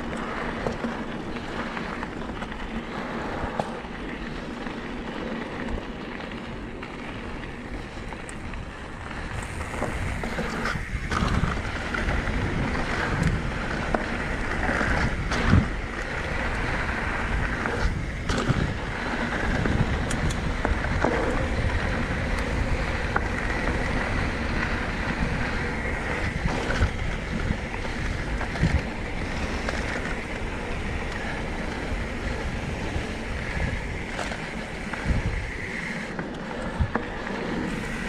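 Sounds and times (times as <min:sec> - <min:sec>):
bike tyres on dirt: 0:00.0 - 0:38.0
wind on microphone: 0:07.6 - 0:38.0.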